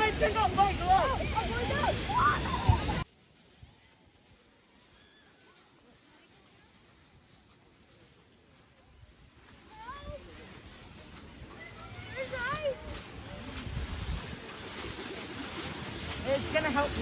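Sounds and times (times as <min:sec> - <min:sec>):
voices calling out: 0:00.0 - 0:03.1
wind buffeting microphone: 0:08.8 - 0:17.0.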